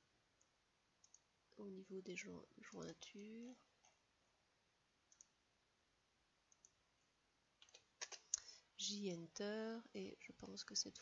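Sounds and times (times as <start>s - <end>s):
computer mouse clicks: 0.4s - 1.3s, 5.1s - 5.4s, 6.5s - 6.8s, 7.6s - 8.5s.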